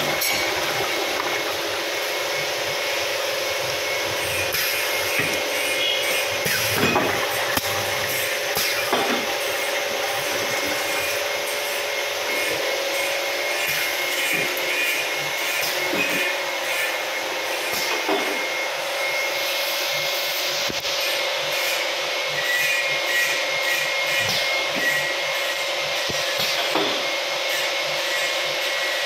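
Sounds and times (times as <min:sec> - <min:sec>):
constant machine whine: 0:00.0 - 0:29.0
machinery hum: 0:00.0 - 0:29.0.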